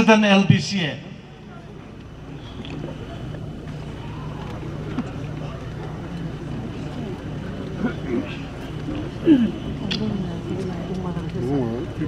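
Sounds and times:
steady low hum: 0.0s - 12.0s
faint indistinct voices: 1.2s - 12.0s.

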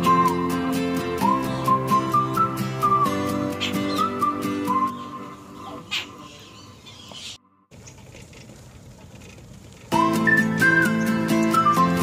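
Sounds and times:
background music: 0.0s - 6.8s, 10.0s - 12.0s
faint outdoor background noise: 0.0s - 12.0s.

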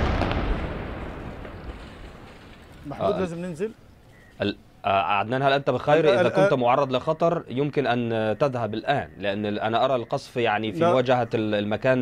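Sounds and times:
explosion rumble echoing: 0.0s - 2.8s.

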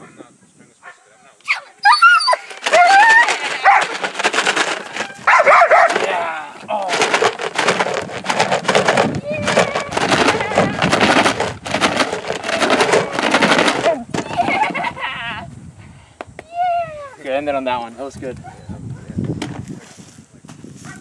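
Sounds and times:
dog growling and barking: 5.3s - 6.0s.

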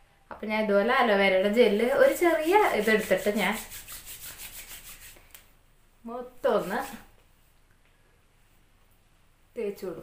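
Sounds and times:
palms rubbing together: 1.8s - 5.5s, 6.4s - 7.2s.

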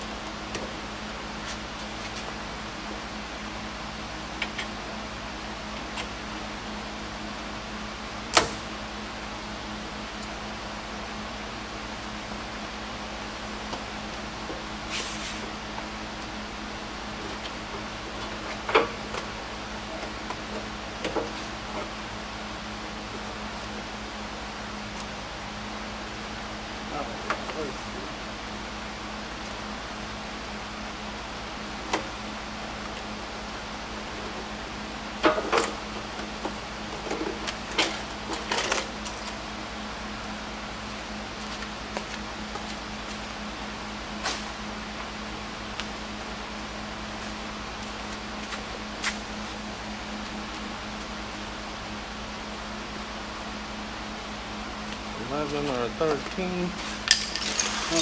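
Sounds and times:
steady low hum: 0.0s - 58.0s
clinks of hand tools and metal: 57.0s - 58.0s.

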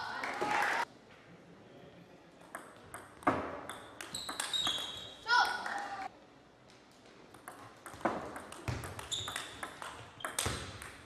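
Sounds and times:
ping pong ball clicking off bats: 2.4s - 5.7s, 7.3s - 11.0s
shoe soles squeaking on floor: 3.7s - 5.3s, 9.0s - 10.7s.

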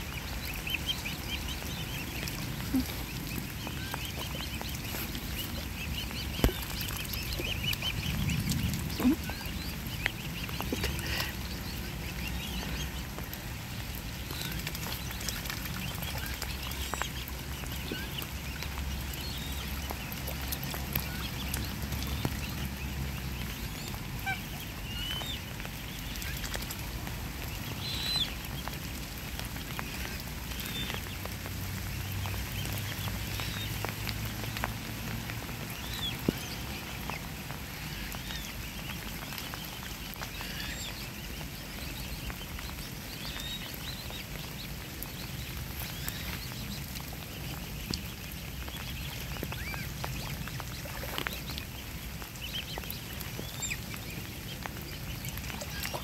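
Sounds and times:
cygnets peeping: 0.1s - 13.1s.

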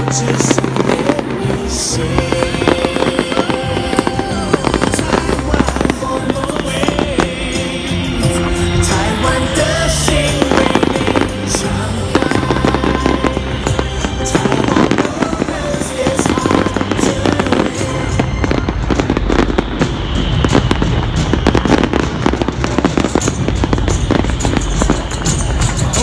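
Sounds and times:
fireworks bursting and crackling: 0.0s - 26.0s
loud music: 0.0s - 26.0s.

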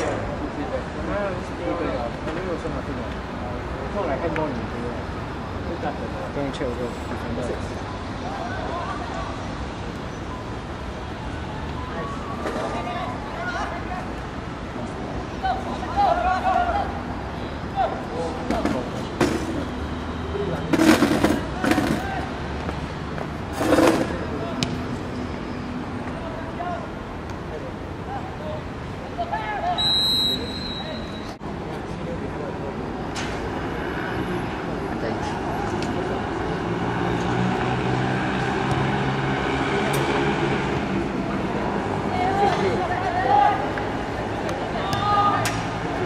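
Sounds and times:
players shouting: 15.4s - 18.6s, 41.8s - 46.0s
short high whistle blast: 29.8s - 31.3s.

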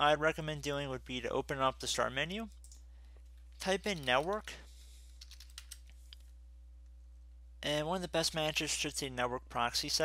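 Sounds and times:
computer keyboard typing: 5.2s - 5.9s.

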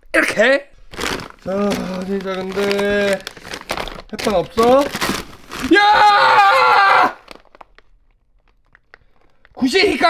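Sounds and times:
plastic packaging crinkling: 0.8s - 10.0s.

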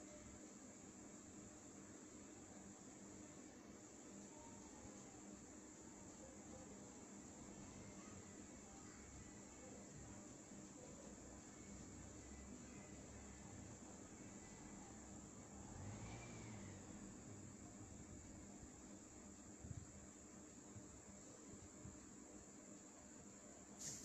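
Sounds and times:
faint steady hiss: 0.0s - 24.0s.

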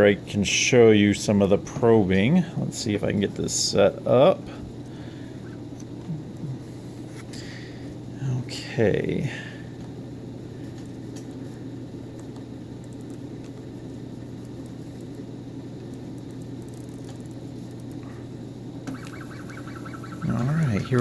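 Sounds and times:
low steady hum: 1.2s - 21.0s
high-pitched stepper motor whine: 18.9s - 21.0s.

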